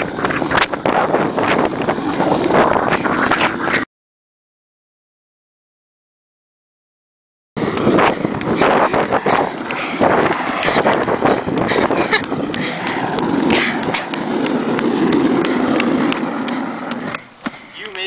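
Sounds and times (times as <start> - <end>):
skateboard wheels rolling on asphalt: 0.0 - 3.8, 7.6 - 18.0
person running: 7.6 - 18.0.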